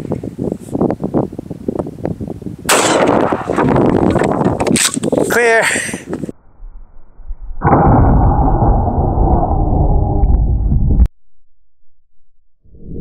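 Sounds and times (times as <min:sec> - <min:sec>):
deep muffled rumble: 0:06.2 - 0:11.1.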